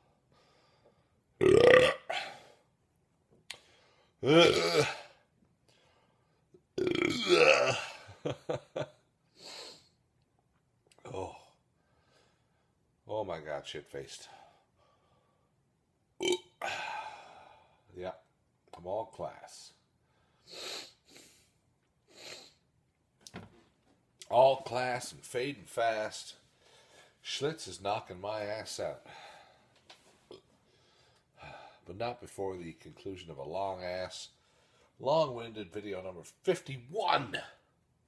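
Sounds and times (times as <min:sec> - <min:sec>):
man belching loudly: 0:01.4 - 0:02.4, 0:04.2 - 0:05.1, 0:06.8 - 0:08.0, 0:16.2 - 0:16.9.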